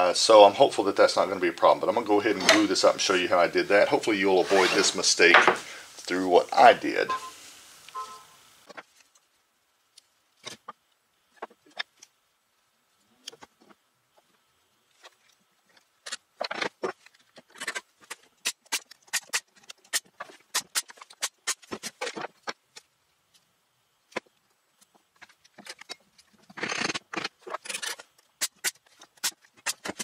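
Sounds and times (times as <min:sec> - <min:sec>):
clamps and wood scraping: 0:02.3 - 0:02.8, 0:04.4 - 0:05.6.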